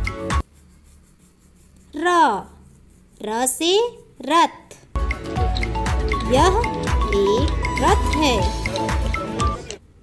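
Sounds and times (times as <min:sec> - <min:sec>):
person speaking a drawn-out syllable: 0:06.2 - 0:08.6.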